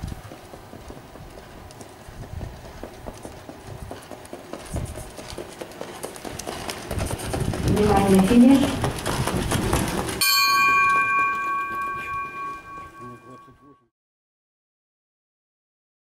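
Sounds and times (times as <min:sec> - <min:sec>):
horse hoofbeats on dirt: 0:00.0 - 0:13.0.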